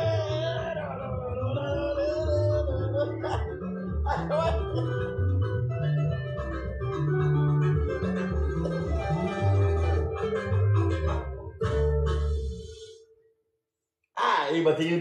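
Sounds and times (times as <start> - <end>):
electric guitar: 0.0 - 12.6
electric bass: 0.0 - 12.8.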